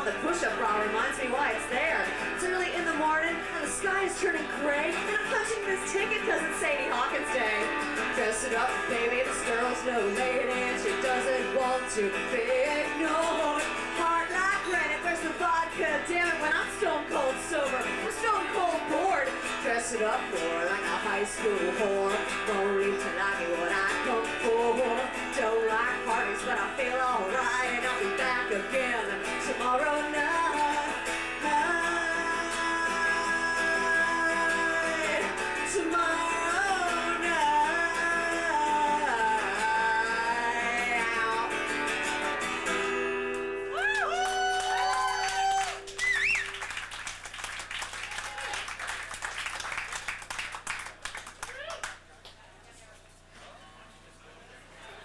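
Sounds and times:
woman singing: 0:00.0 - 0:42.3
strummed acoustic guitar: 0:00.0 - 0:43.8
cheering: 0:43.7 - 0:46.9, 0:47.6 - 0:49.9, 0:51.4 - 0:52.0
audience applauding: 0:43.8 - 0:52.4
whistle: 0:45.9 - 0:46.6.

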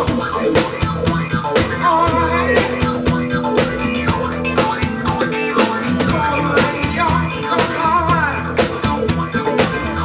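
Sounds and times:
electric guitar notes: 0:00.0 - 0:09.1
bass notes: 0:00.0 - 0:10.0
drum kit beat: 0:00.0 - 0:10.0.

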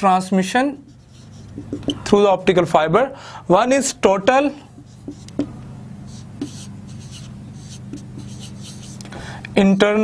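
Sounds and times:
marker pen on whiteboard: 0:00.4 - 0:02.3, 0:03.7 - 0:10.0
steady low hum: 0:00.6 - 0:10.0.

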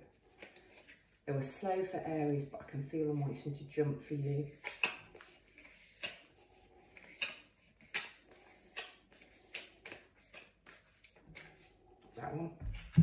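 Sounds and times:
cards being shuffled: 0:04.5 - 0:11.7.

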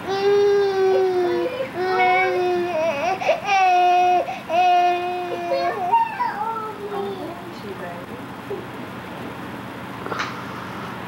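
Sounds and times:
baby crying: 0:00.1 - 0:06.7.

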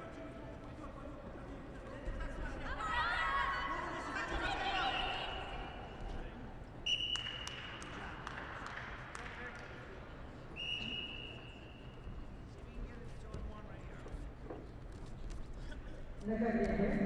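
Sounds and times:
low voices in hall: 0:00.0 - 0:17.0.

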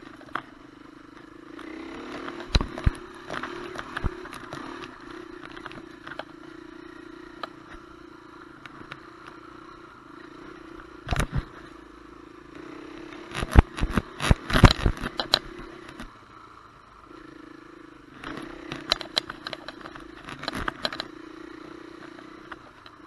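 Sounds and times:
dirt bike engine running: 0:00.0 - 0:23.0
bike knocking and clattering: 0:18.7 - 0:21.1.

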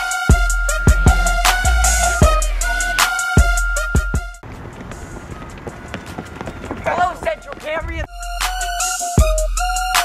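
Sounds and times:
outdoor open-air noise: 0:00.0 - 0:10.0
footfalls running on pavement: 0:04.4 - 0:08.1.

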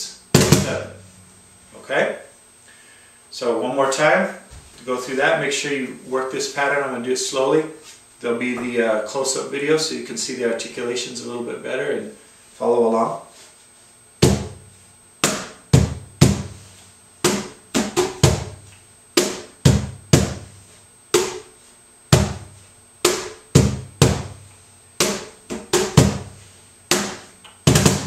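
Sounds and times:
cajon bass tones and slaps: 0:00.3 - 0:01.3, 0:14.2 - 0:16.6, 0:17.2 - 0:20.5, 0:21.1 - 0:21.5, 0:22.1 - 0:28.0.

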